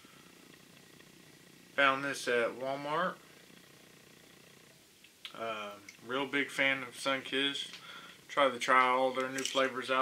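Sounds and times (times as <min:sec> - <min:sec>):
faint room hiss: 0:00.0 - 0:10.0
man speaking: 0:08.3 - 0:10.0.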